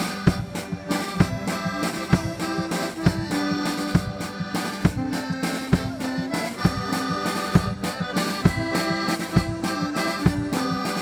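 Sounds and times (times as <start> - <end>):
accordions: 0.0 - 11.0
alto saxophone: 0.0 - 11.0
steady drum beat: 0.0 - 11.0.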